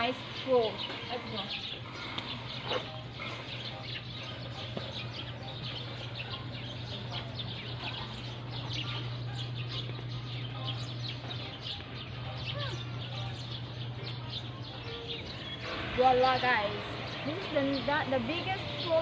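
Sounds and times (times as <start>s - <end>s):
birds chirping: 0.0s - 19.0s
steady low hum: 0.0s - 19.0s.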